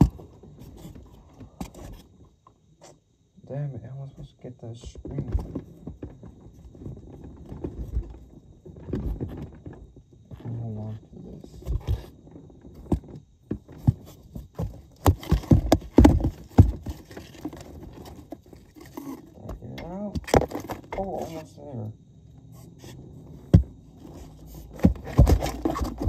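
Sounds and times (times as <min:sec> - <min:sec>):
rulers knocking and scraping: 0:22.7 - 0:26.0.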